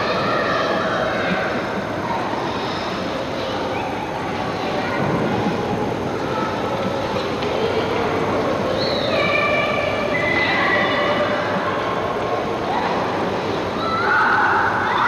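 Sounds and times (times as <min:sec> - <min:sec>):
faint children's voices: 0:00.0 - 0:15.0
skating rink rushing noise: 0:00.0 - 0:15.0.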